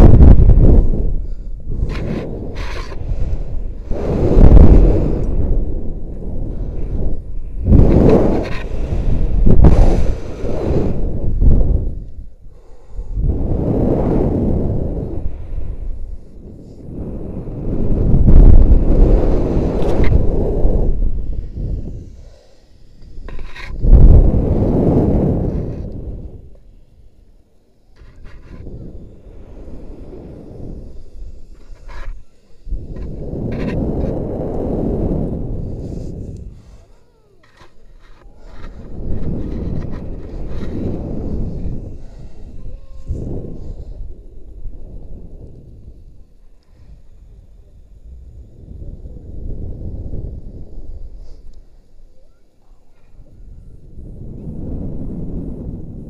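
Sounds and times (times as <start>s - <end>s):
wind buffeting microphone: 0.0s - 52.2s, 52.9s - 56.0s.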